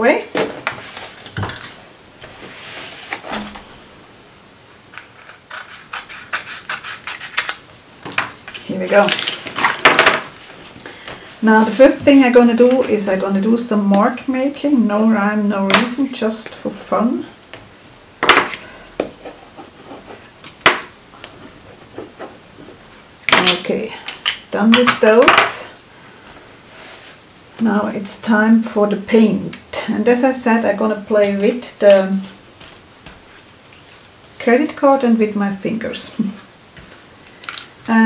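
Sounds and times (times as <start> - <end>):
paper rustling and scraping: 0.6 - 3.6, 4.9 - 7.6, 8.4 - 10.7.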